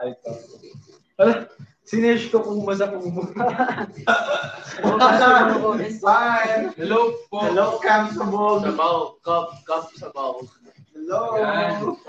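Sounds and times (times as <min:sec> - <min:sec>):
young men chuckling and talking: 0:03.0 - 0:09.0.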